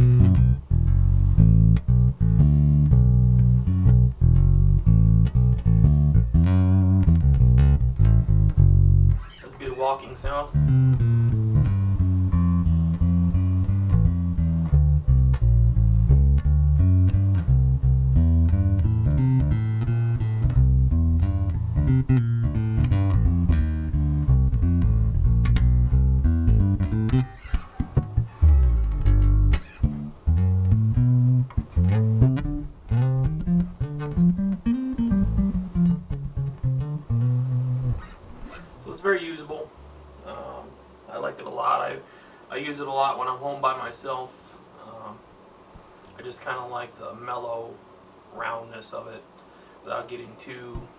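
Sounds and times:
electric bass played fingerstyle: 0.0s - 40.6s.

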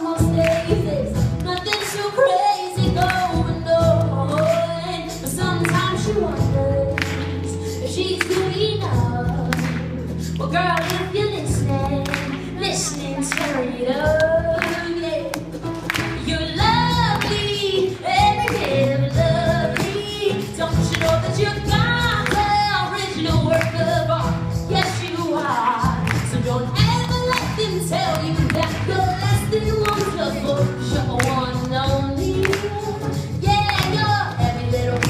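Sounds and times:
percussion beats: 0.0s - 35.0s
woman singing: 0.0s - 35.0s
electric bass: 2.8s - 35.0s.

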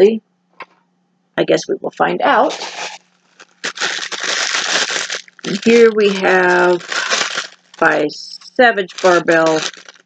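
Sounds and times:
plastic bag crinkling: 2.3s - 10.0s.

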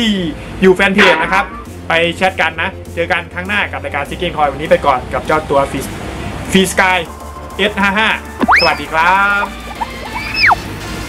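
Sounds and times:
background music: 0.0s - 11.0s
cartoon boing sound effect: 8.4s - 8.9s.

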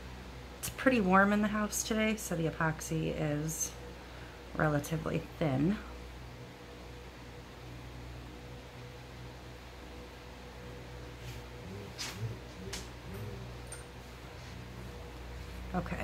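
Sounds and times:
room hum: 0.0s - 16.0s.

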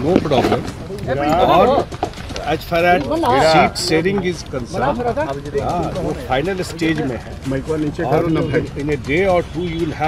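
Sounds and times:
voices speaking: 0.0s - 10.0s.

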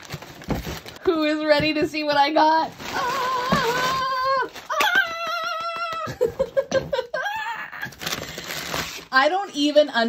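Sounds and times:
woman squealing: 2.8s - 8.1s.

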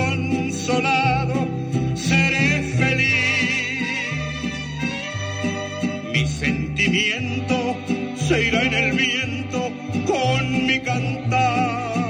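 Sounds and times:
mariachi band playing: 0.0s - 12.0s.

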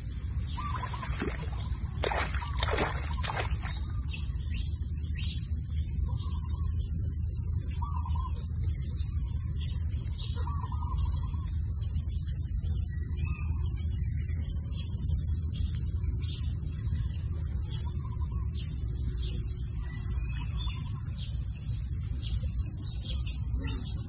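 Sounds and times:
steady low rumble: 0.0s - 24.0s
hands splashing in muddy water: 0.6s - 4.1s.

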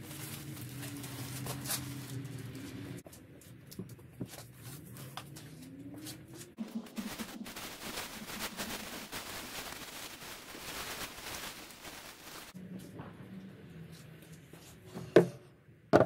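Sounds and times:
plastic bag rustling: 0.0s - 3.0s, 6.6s - 12.6s.

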